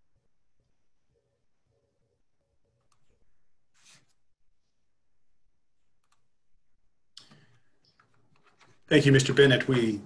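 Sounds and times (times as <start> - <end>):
man speaking: 8.8 - 10.0.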